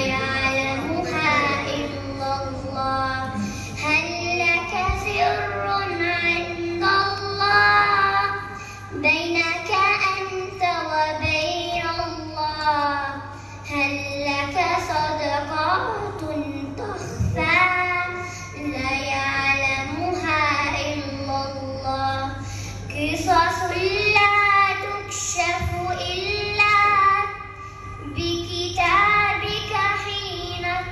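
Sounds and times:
girl singing unaccompanied: 0:00.0 - 0:30.9
steady low hum: 0:00.0 - 0:30.9.

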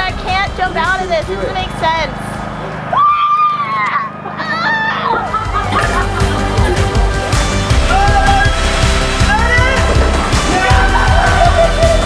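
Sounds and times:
background music: 0:00.0 - 0:02.9, 0:04.1 - 0:12.0.

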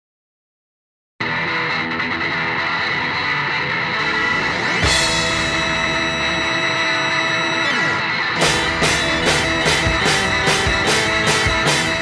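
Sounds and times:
distorted electric guitar drone: 0:01.2 - 0:12.0.

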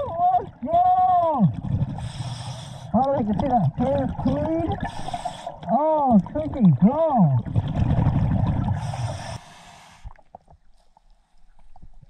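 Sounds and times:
underwater exhaled bubbles rushing: 0:00.0 - 0:09.4.

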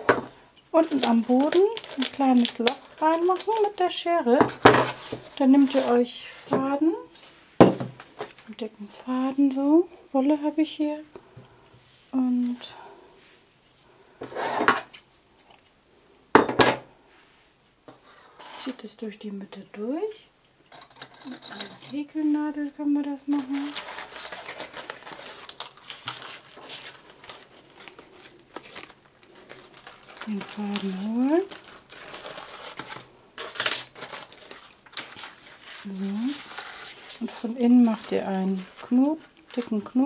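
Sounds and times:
dry leaves crackling and knocking: 0:00.8 - 0:06.0, 0:23.3 - 0:33.1, 0:33.9 - 0:40.0.

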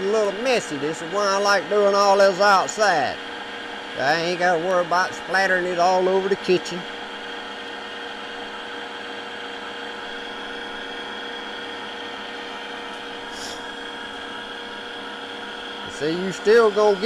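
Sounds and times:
electric strainer motor humming: 0:00.0 - 0:17.0.

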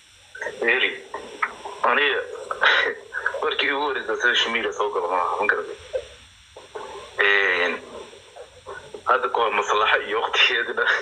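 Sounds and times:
drawn-out wavering vocal sound: 0:06.6 - 0:09.1.

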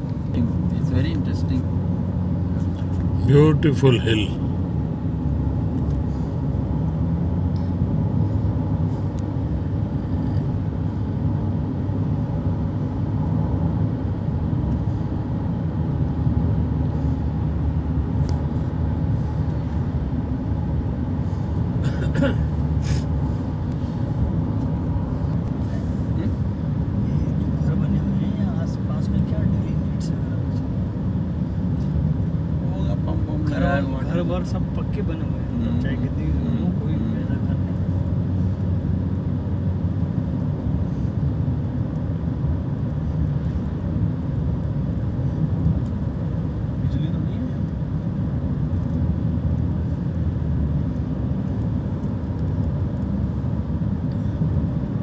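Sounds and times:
car engine and tyres rumbling: 0:00.0 - 0:55.0.

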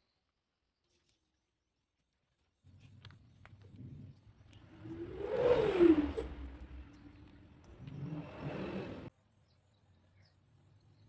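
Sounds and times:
vehicle engine passing: 0:04.6 - 0:09.1.

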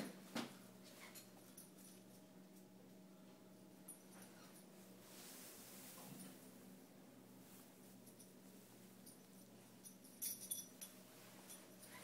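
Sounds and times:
metal dog tags jingling: 0:09.1 - 0:12.0.

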